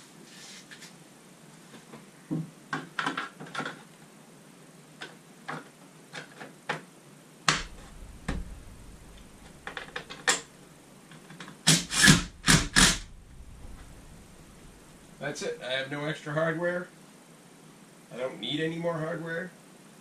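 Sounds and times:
clattering knocks: 7.5 - 10.4.

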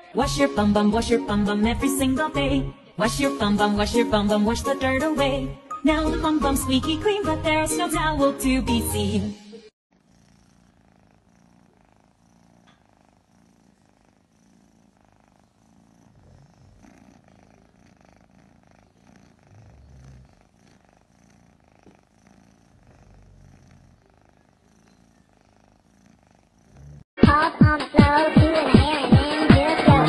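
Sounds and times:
cat purring: 9.9 - 27.1.

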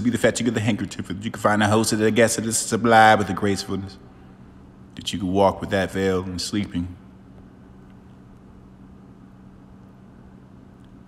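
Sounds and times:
low hum and rumble: 0.0 - 11.0.

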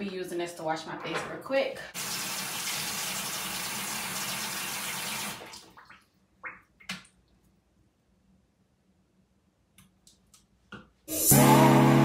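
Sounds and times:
faucet running: 2.0 - 5.6.

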